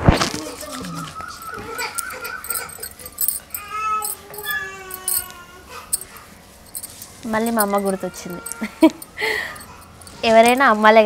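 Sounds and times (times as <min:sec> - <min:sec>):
animal high-pitched calls: 0:00.6 - 0:04.9.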